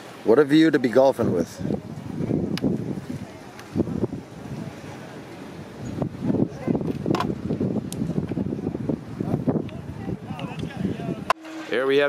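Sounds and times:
wind buffeting microphone: 0.8s - 12.0s.

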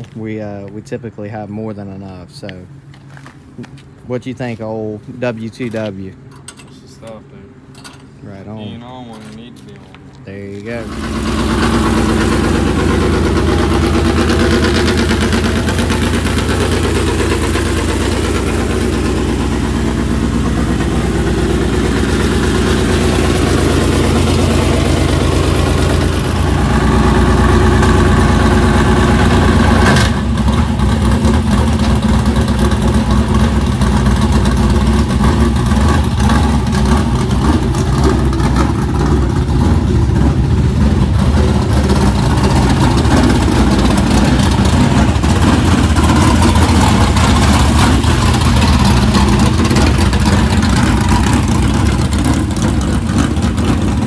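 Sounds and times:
race car engine idling: 0.0s - 54.0s.

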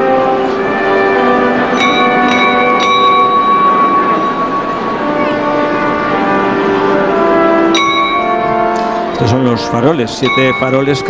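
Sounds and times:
bells ringing: 0.0s - 11.0s.

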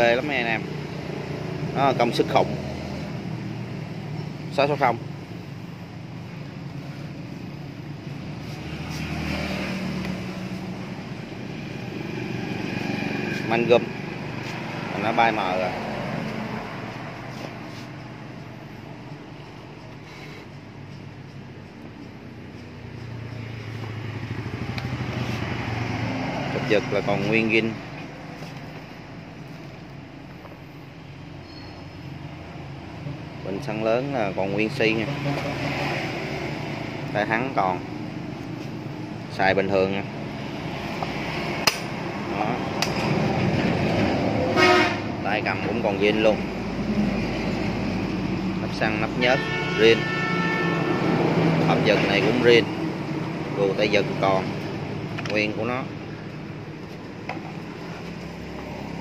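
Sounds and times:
low engine hum: 0.5s - 33.4s, 50.8s - 59.0s
vehicle horn beep: 44.5s - 45.1s, 49.3s - 51.0s.

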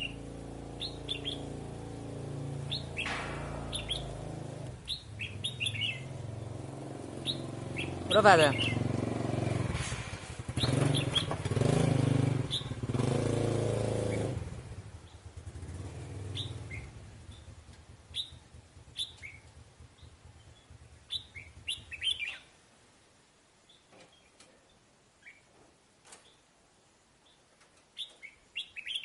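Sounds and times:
bird chirping calls: 0.0s - 1.7s, 2.6s - 9.0s, 10.5s - 11.4s, 12.4s - 12.8s, 16.2s - 22.6s, 27.2s - 29.0s
motor engine hum: 0.0s - 22.0s.

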